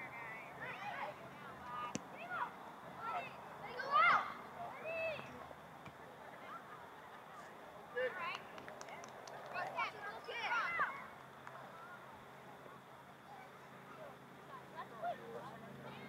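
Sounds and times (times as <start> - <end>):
distant people shouting: 1.9 - 5.4.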